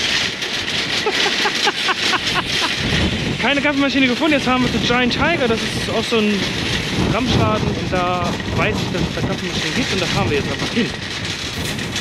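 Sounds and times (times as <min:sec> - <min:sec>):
shopping cart rolling on asphalt: 0:00.0 - 0:12.0
man laughing: 0:00.9 - 0:03.3.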